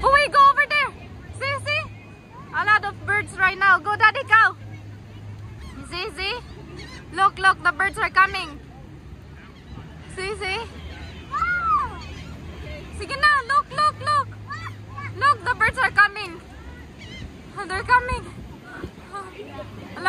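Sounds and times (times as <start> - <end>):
beach background noise: 0.0 - 20.0
gulls calling: 0.0 - 20.0.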